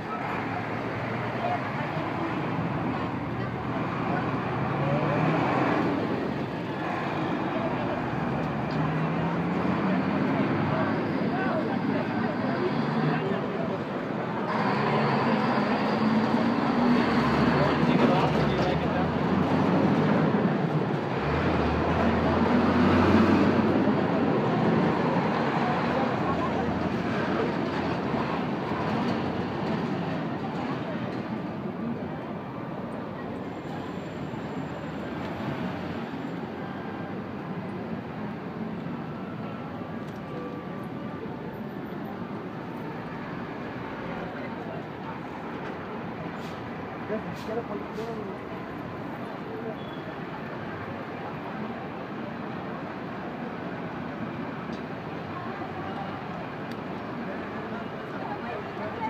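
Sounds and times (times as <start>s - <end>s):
crowd talking: 0.0s - 59.0s
heavy vehicle engine rumbling: 0.0s - 59.0s
street noise: 0.0s - 59.0s
traffic: 0.0s - 59.0s.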